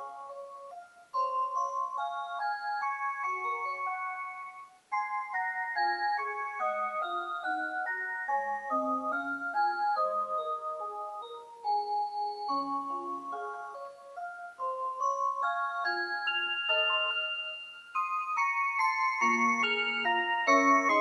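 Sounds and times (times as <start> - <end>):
wall clock playing a melody: 0.0 - 21.0.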